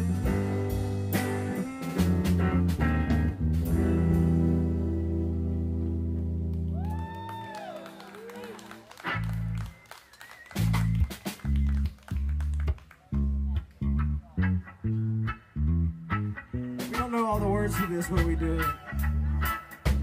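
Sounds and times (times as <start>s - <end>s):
electric bass notes: 0.0s - 7.4s, 9.0s - 9.8s, 10.5s - 20.0s
electric guitar notes: 0.0s - 9.8s, 10.6s - 20.0s
person's voice: 16.9s - 18.8s.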